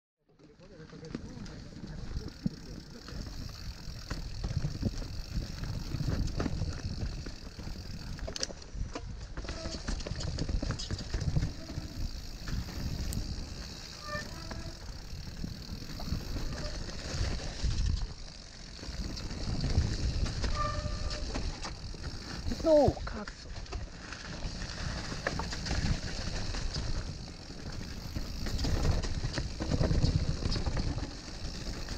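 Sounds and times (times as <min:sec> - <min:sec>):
bike rumbling over rough trail: 0:00.3 - 0:31.9
bike knocks and rattles: 0:00.9 - 0:22.8, 0:23.5 - 0:31.9.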